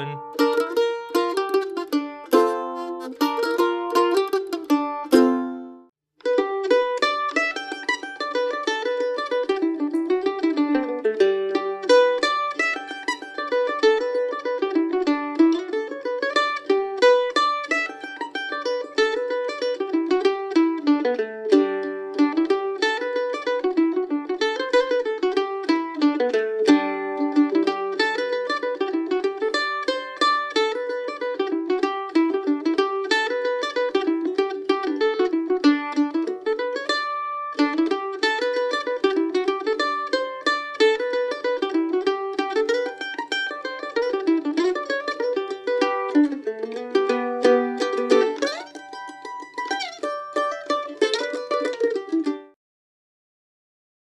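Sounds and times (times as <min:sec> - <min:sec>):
fast bluegrass mandolin tune: 0:00.0 - 0:52.6
mandolin picking: 0:00.0 - 0:52.6.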